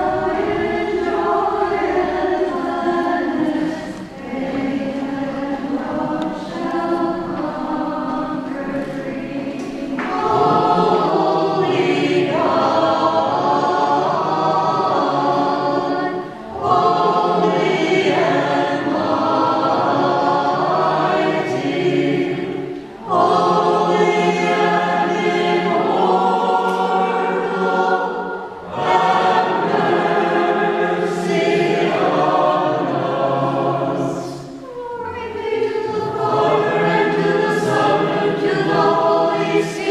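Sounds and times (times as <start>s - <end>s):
women's choir singing a hymn: 0.0s - 39.9s.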